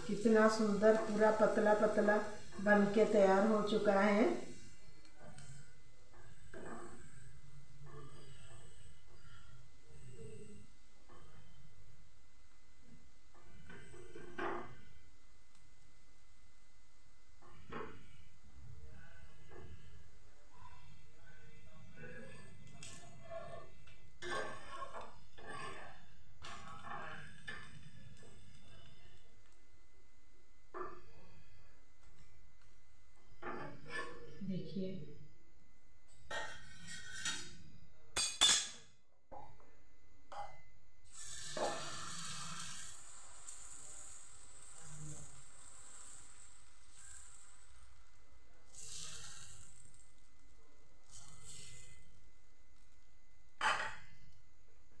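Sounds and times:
batter sizzling on hot griddle: 0.0s - 20.3s, 24.2s - 29.6s, 41.0s - 54.3s
metal spatula scraping on griddle: 24.2s - 27.7s, 36.3s - 37.5s, 41.1s - 48.0s, 48.7s - 50.0s, 51.0s - 52.0s.

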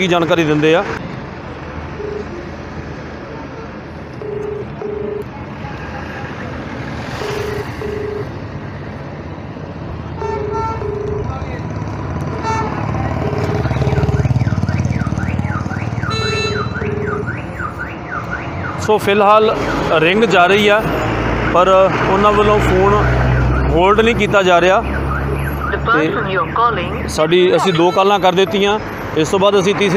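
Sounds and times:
road traffic: 0.0s - 29.9s
truck passing: 0.0s - 29.9s
telephone ringback tone: 2.0s - 2.4s, 4.2s - 5.3s, 7.1s - 8.4s, 10.4s - 11.3s, 13.1s - 14.3s
warbling alarm tone: 7.2s - 8.3s, 10.4s - 11.3s, 13.0s - 18.7s
car horn toots: 10.2s - 11.3s, 12.3s - 14.2s, 16.0s - 17.4s, 27.6s - 28.4s.

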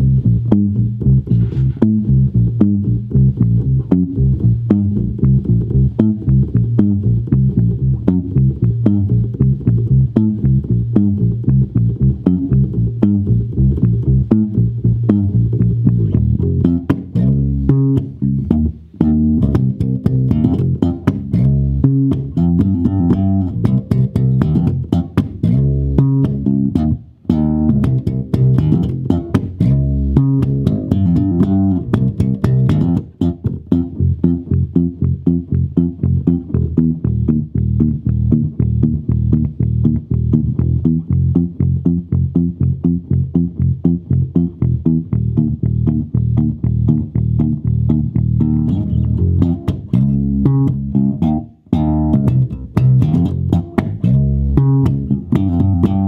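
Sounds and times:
electric bass playing: 0.0s - 56.0s.

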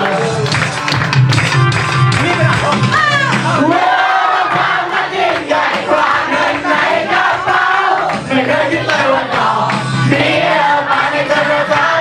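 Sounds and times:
people clapping: 0.0s - 12.0s
group shouting and singing along: 2.8s - 12.0s.

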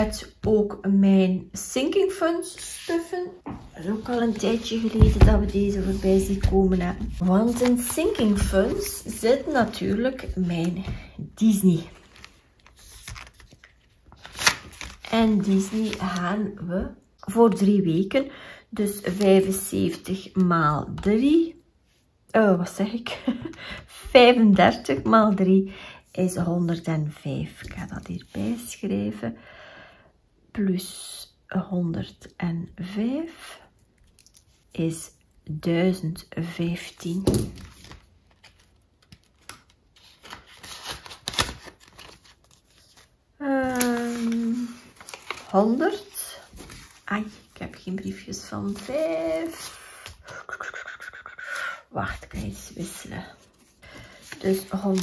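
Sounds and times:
plastic binder pages turning: 3.7s - 16.6s, 37.1s - 50.3s, 53.4s - 55.0s
plastic envelopes clicking and rustling: 3.8s - 16.4s, 37.4s - 47.8s.

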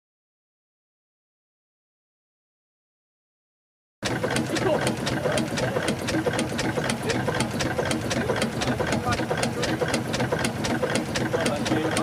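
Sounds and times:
rhythmic sharp clicks: 4.0s - 12.0s
steam engine running: 4.0s - 12.0s.

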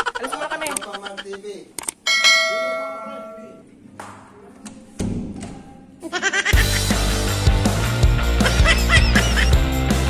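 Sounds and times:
bell chime: 2.1s - 3.6s.

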